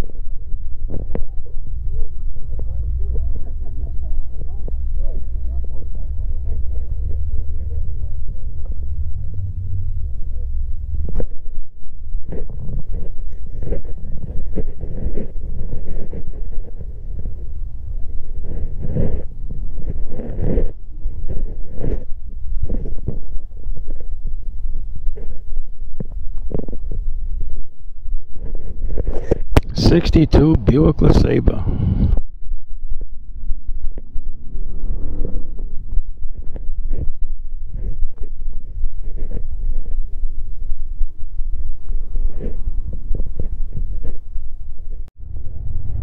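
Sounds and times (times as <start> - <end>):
low rumble: 0.0 - 46.0
people talking: 0.9 - 8.8, 29.6 - 31.7.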